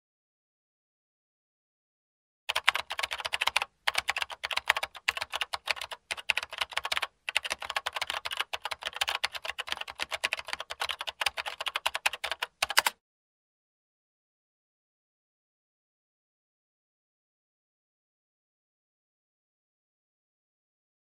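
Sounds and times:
rapid keyboard typing clicks: 2.5 - 13.0.

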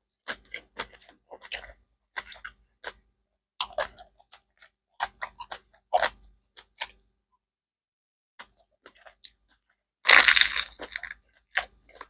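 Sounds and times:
crunchy chewing: 0.2 - 7.0, 8.4 - 12.0
crunchy bite of fried food: 3.6 - 7.0, 8.4 - 12.0.

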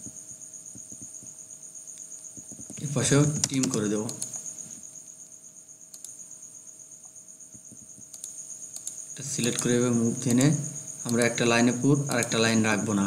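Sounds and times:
high-pitched pulsing whine: 0.0 - 5.1
mouse and keyboard clicks: 2.5 - 4.4, 5.9 - 6.2, 8.1 - 9.7
man speaking: 2.8 - 4.2, 9.2 - 13.0.

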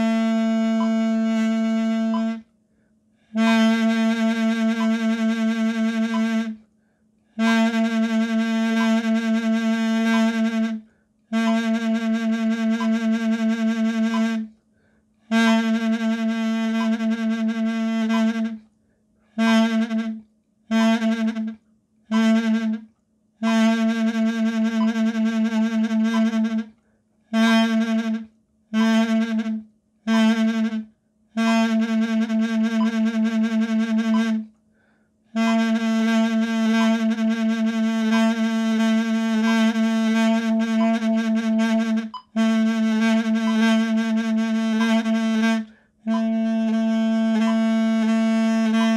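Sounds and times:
double-reed wooden pipe: 0.0 - 2.5, 3.2 - 6.6, 7.3 - 14.6, 15.3 - 18.7, 19.3 - 26.8, 27.4 - 34.5, 35.4 - 48.9.

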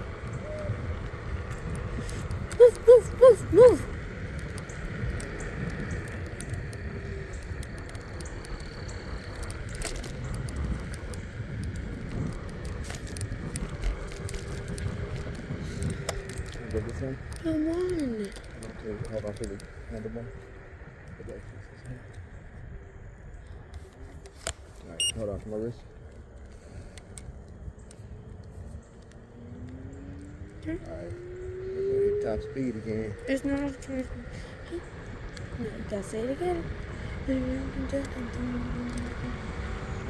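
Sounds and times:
wind on microphone: 0.0 - 25.0, 25.6 - 40.0
scooter tyres rumbling on asphalt: 0.0 - 40.0
person calling out: 2.5 - 3.9.

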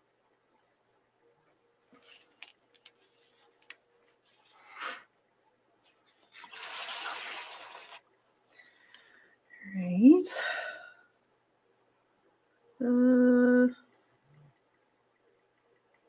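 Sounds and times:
paper rustling: 1.9 - 4.6.

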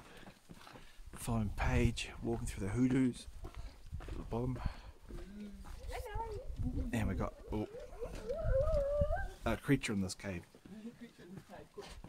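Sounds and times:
people's voices: 4.3 - 9.9
wavering drawn-out sounds: 6.7 - 9.5.

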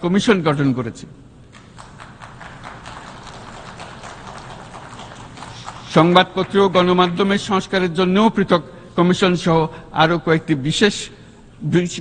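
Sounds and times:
audience applauding: 1.5 - 7.2.

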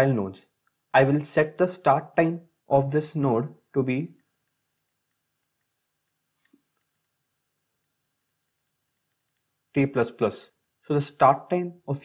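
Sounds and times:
faint ticks: 4.2 - 7.2, 7.8 - 9.5.

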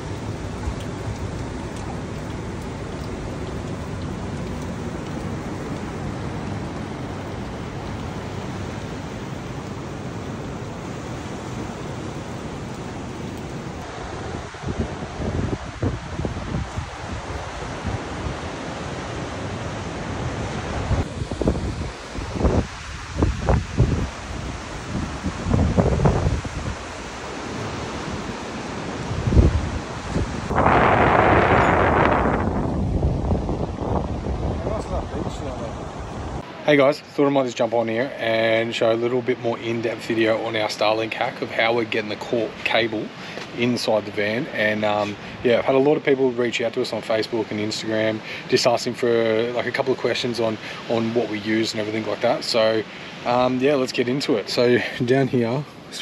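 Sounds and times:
wind buffeting microphone: 0.0 - 36.4
ocean surf: 0.0 - 56.0.

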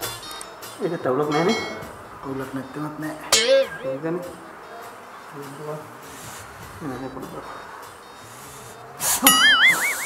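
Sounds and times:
wobbling whistle-like tone: 9.3 - 10.0.

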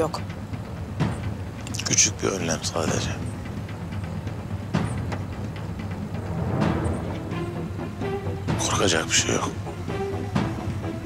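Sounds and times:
film score with low percussion: 0.0 - 11.0.

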